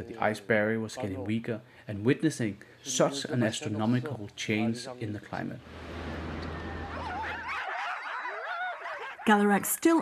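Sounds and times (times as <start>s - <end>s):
dogs howling: 6.4s - 9.6s.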